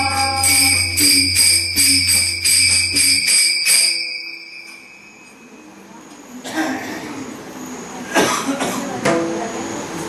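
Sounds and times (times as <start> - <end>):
person coughing: 6.4 - 7.2, 8.1 - 8.8.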